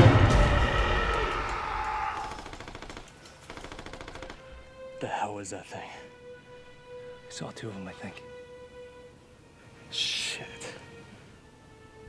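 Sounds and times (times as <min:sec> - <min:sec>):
distant automatic rifle fire: 0:02.3 - 0:04.4.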